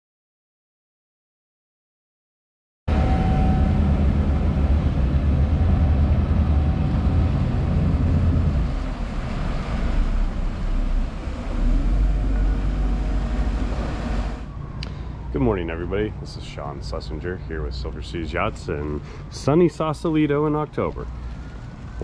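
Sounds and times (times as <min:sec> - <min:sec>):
water noise: 0:02.9 - 0:15.7
boat engine low rumble: 0:02.9 - 0:22.0.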